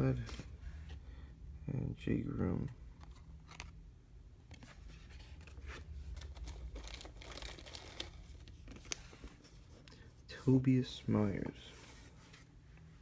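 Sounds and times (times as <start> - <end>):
foil and plastic crinkling: 6.1 - 9.0.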